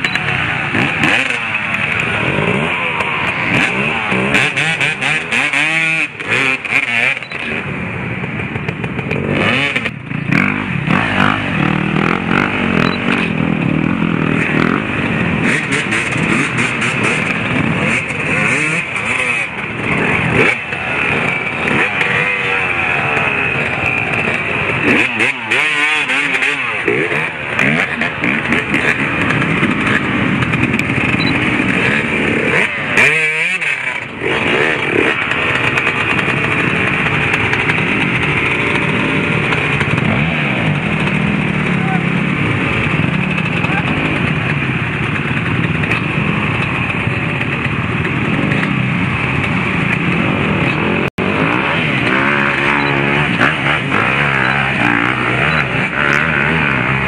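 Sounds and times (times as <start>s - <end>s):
motorcycle engines revving hard: 0.0s - 57.0s.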